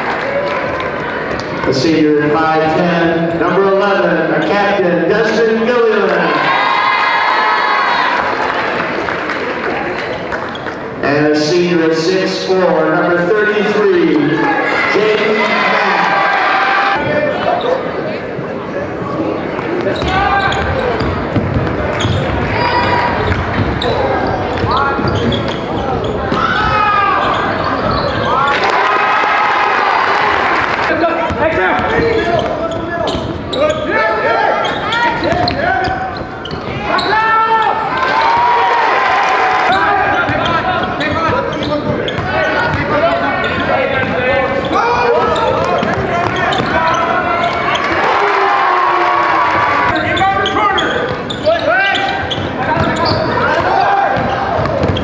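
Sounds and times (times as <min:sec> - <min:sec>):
many overlapping voices: 0:00.0 - 0:55.0
basketball bouncing on gym floor: 0:19.6 - 0:28.3, 0:31.2 - 0:33.5, 0:34.6 - 0:36.9, 0:40.2 - 0:44.3, 0:45.3 - 0:47.7, 0:52.3 - 0:55.0.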